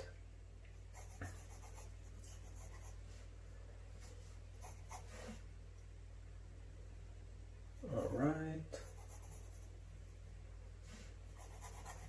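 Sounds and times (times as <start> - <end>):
steady low hum: 0.0 - 12.0
pencil scratching on paper: 0.9 - 3.0, 4.6 - 5.4, 7.8 - 9.7, 11.3 - 12.0.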